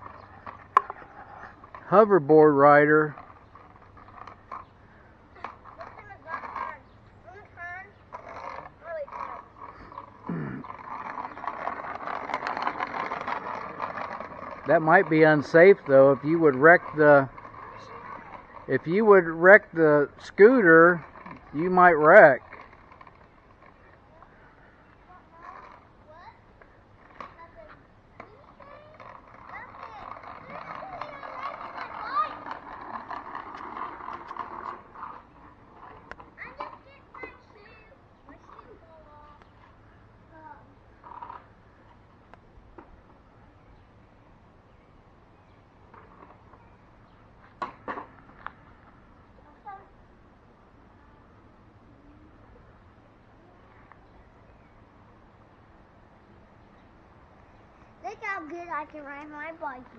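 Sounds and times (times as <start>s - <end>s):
small wheels rolling on concrete: 0.0s - 59.9s.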